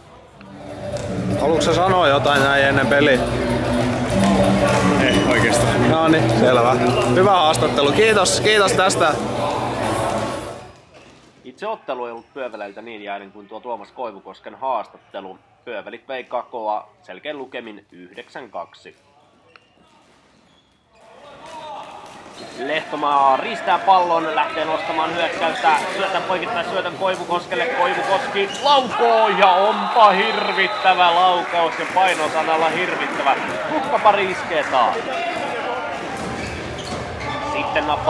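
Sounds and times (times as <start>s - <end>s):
sports hall background noise: 0.0s - 38.0s.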